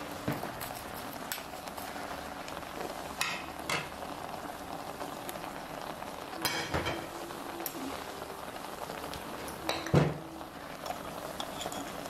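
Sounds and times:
pot bubbling hiss: 0:00.0 - 0:12.0.

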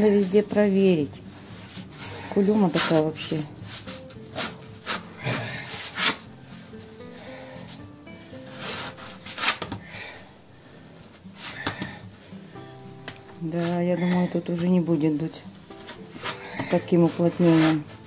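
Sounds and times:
wooden stick scraping brick flue: 0:00.0 - 0:06.8, 0:08.4 - 0:09.9, 0:13.4 - 0:14.6, 0:15.2 - 0:18.0.

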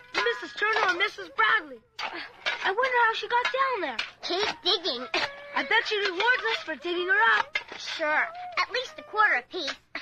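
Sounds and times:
shovels digging into earth: 0:00.0 - 0:09.8.

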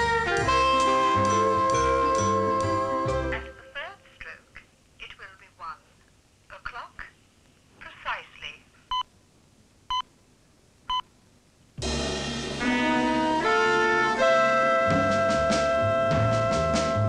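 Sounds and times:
recorded voice announcing: 0:03.3 - 0:05.9, 0:06.5 - 0:07.2, 0:07.8 - 0:08.7.

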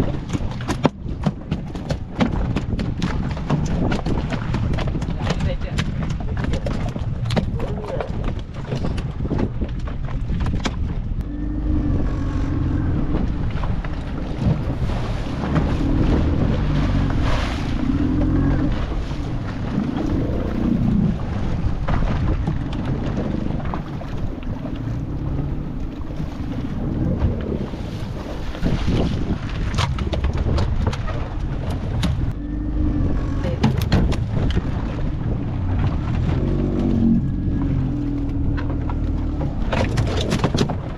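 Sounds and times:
boat engine running: 0:00.0 - 0:40.9
waves splashing against hull: 0:00.0 - 0:40.9
wind buffeting microphone: 0:00.0 - 0:40.9.

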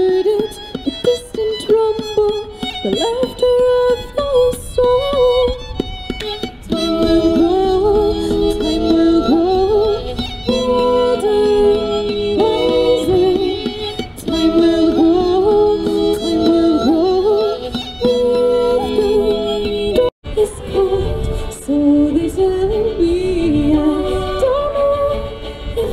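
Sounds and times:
woman singing into a microphone: 0:00.0 - 0:05.8, 0:06.5 - 0:25.9
fiddle: 0:00.0 - 0:25.9.

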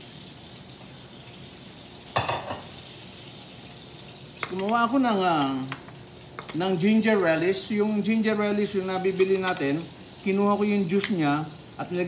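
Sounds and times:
hot oil sizzling: 0:00.0 - 0:12.0.

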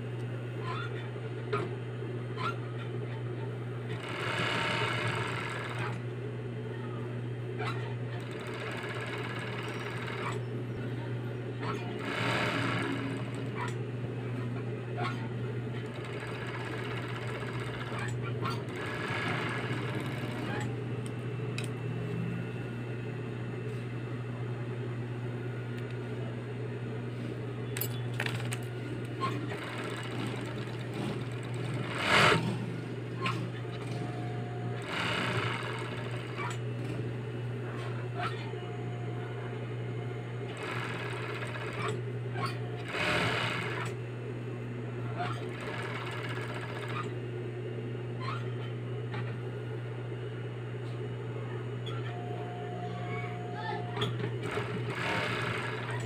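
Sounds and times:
sewing machine motor hum: 0:00.6 - 0:23.9, 0:24.7 - 0:49.8, 0:51.8 - 0:56.0
fast machine stitching: 0:03.9 - 0:06.0, 0:08.2 - 0:10.4, 0:12.0 - 0:13.7, 0:15.8 - 0:20.7, 0:29.2 - 0:34.1, 0:34.8 - 0:36.5, 0:40.5 - 0:44.0, 0:45.2 - 0:47.1, 0:54.4 - 0:56.0.

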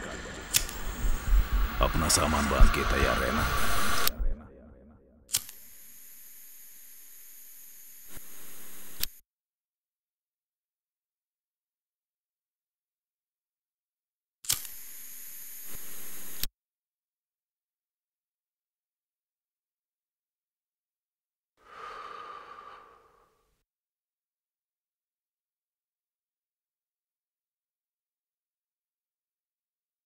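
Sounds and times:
lighter flame hissing: 0:00.1 - 0:01.8
man speaking: 0:01.7 - 0:04.5
sharp click: 0:14.4 - 0:14.7.

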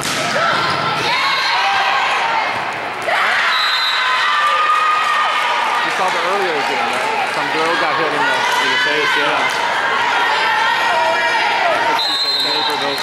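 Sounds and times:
people shouting: 0:00.3 - 0:12.7.

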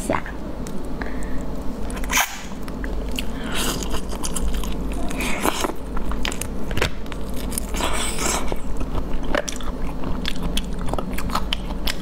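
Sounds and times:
biting and chewing: 0:00.7 - 0:12.0.

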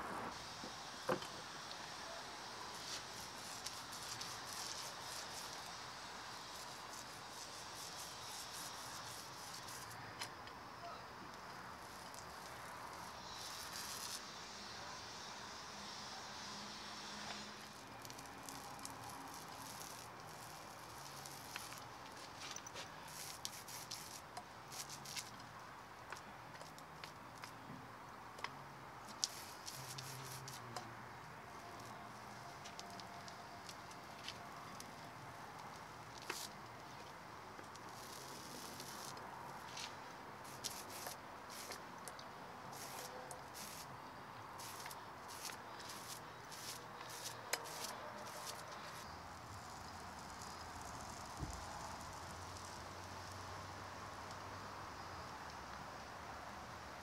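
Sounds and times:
paint roller sticky crackle: 0:00.6 - 0:10.6, 0:11.3 - 0:27.7, 0:28.4 - 0:53.4.

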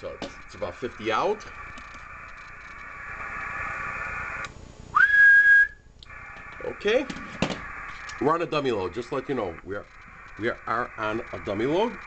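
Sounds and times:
radio hiss: 0:00.0 - 0:04.5, 0:06.0 - 0:12.0
person whistling a single note: 0:04.9 - 0:05.8.

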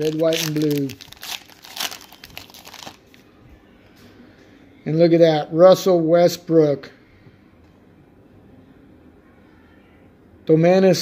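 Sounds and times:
foil wrapper crinkling: 0:00.0 - 0:03.2.

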